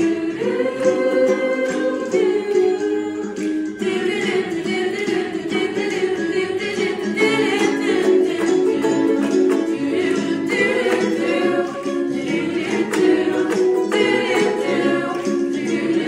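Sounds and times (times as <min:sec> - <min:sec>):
choir singing in harmony: 0:00.0 - 0:16.0
strummed ukulele: 0:00.0 - 0:16.0.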